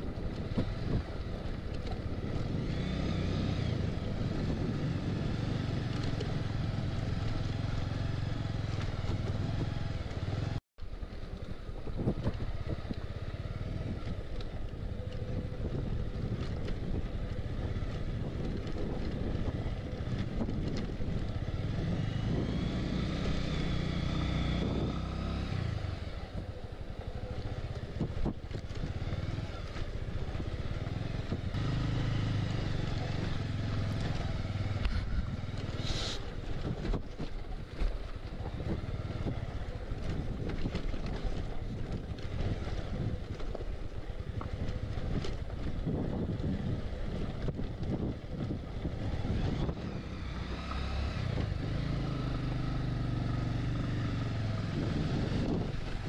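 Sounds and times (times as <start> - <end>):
motorcycle engine revving: 0.0 - 10.6, 11.9 - 56.0.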